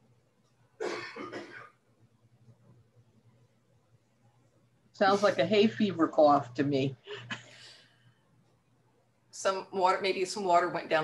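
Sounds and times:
man coughing: 0.8s - 1.7s.

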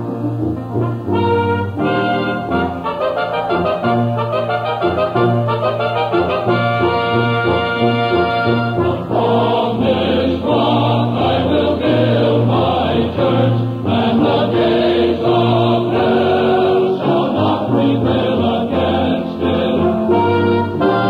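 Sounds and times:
instrumental accompaniment: 0.0s - 21.0s
church choir singing: 1.8s - 21.0s.

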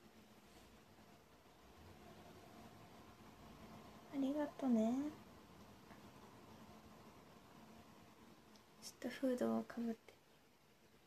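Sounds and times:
soft hiss: 0.0s - 11.0s
woman speaking: 4.1s - 5.2s, 8.8s - 10.2s.

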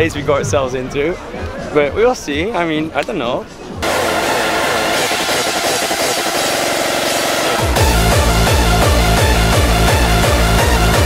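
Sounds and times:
distorted loud music: 3.8s - 11.0s.

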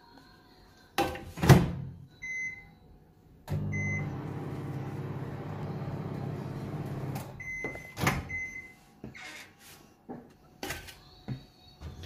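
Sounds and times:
microwave oven humming: 3.5s - 7.6s.

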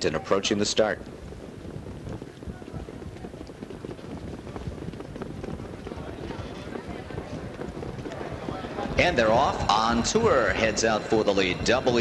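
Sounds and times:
trotting hoofbeats: 1.0s - 12.0s
faint murmur of voices: 2.2s - 4.8s, 5.4s - 12.0s.

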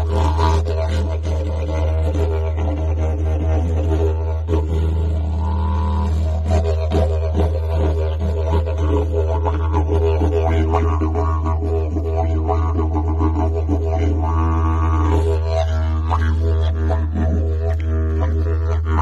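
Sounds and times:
didgeridoo drone: 0.0s - 19.0s.

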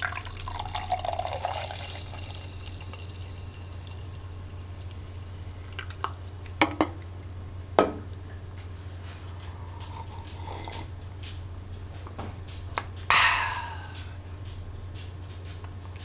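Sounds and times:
drink poured into a ceramic mug: 0.0s - 6.6s
steady low hum: 0.0s - 16.0s.

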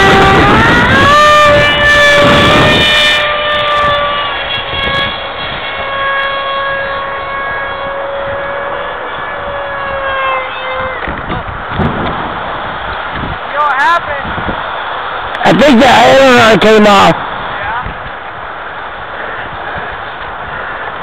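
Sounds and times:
electric motor and propeller whining: 0.0s - 21.0s.

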